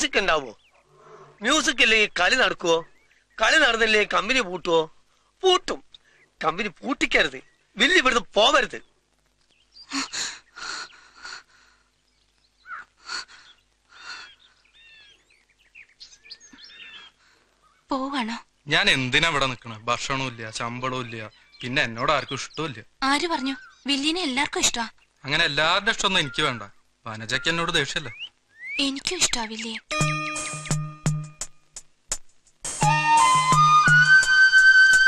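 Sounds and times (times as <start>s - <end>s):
birds chirping and whistling: 13.4s - 17.8s, 26.0s - 30.9s.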